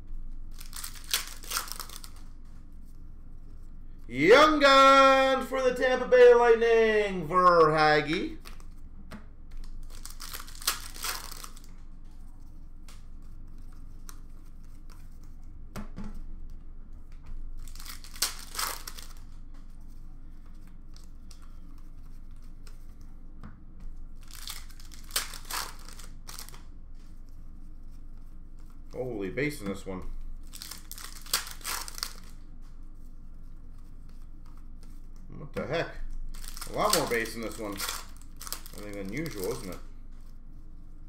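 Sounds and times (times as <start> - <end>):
wrappers tearing and crinkling: 0.5 - 2.3, 9.6 - 11.8, 17.6 - 19.3, 24.2 - 26.6, 30.4 - 32.4, 36.1 - 39.8.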